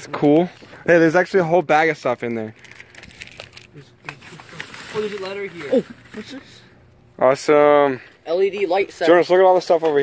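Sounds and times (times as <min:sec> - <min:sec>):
plastic bags rustling: 0:02.6 - 0:06.6.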